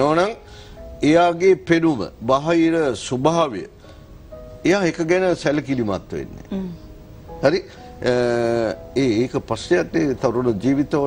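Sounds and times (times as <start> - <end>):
faint background tones: 0.0 - 11.0.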